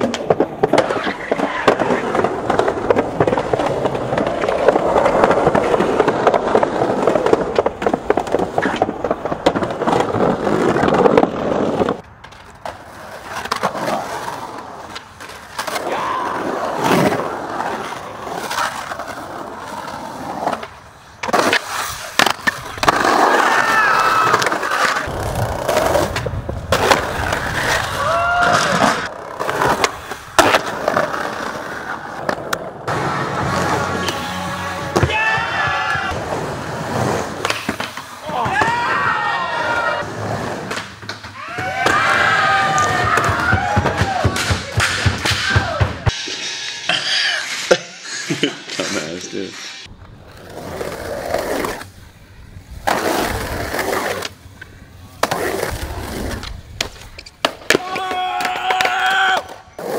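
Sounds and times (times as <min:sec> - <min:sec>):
skateboard wheels rolling on concrete: 0:00.0 - 0:59.9.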